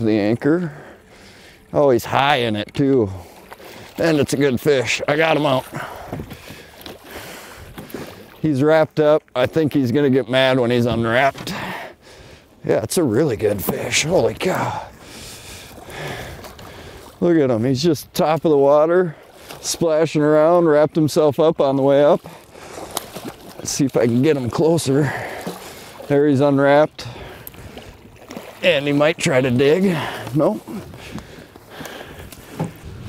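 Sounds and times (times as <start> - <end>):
water splashing and dripping: 2.2 - 9.9, 13.4 - 17.2, 17.8 - 32.9
fish splashing at water surface: 22.3 - 26.2, 27.2 - 29.0.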